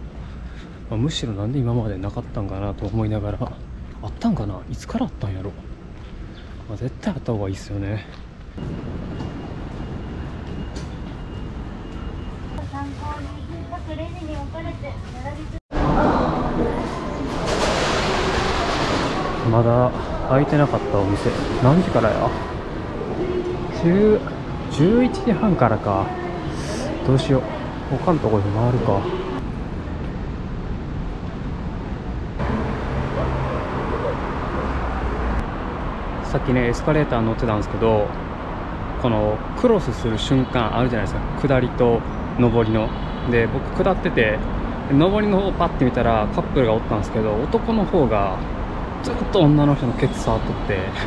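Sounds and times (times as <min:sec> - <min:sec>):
traffic rumble and hiss: 0:00.0 - 0:51.0.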